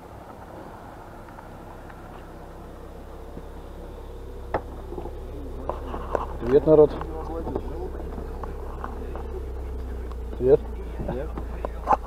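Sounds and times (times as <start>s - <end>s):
car engine humming: 0.0s - 12.0s.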